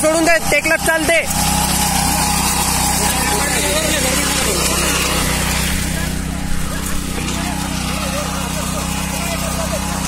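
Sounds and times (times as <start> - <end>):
reaper engine running: 0.0 - 10.0.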